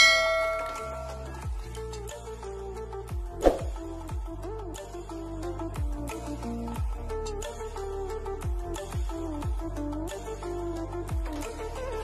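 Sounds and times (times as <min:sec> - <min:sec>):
bright bell chime: 0:00.0 - 0:01.3
music with deep bass beat: 0:00.0 - 0:12.0.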